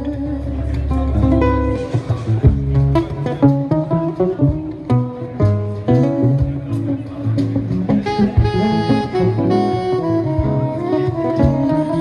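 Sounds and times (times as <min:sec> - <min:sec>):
guitar plucking single notes: 0:00.0 - 0:12.0
low bass notes: 0:00.0 - 0:12.0.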